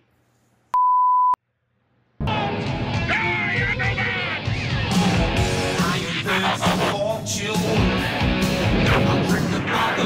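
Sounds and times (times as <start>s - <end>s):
censor bleep: 0.8s - 1.4s.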